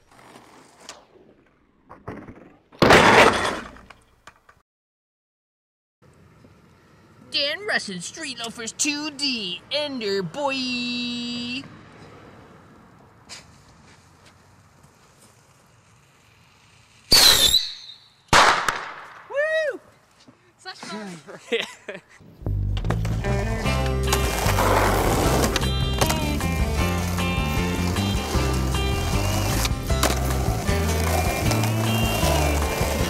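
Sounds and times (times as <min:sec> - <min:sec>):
skateboard tail popping: 0:00.0 - 0:03.0, 0:22.5 - 0:33.0
skateboard wheels rolling: 0:00.0 - 0:04.6, 0:11.3 - 0:18.0, 0:22.5 - 0:33.0
skateboard landing slap: 0:01.8 - 0:04.5, 0:18.3 - 0:19.3, 0:29.6 - 0:30.4
firework high whistle: 0:17.1 - 0:18.3
person shouting: 0:19.3 - 0:19.8.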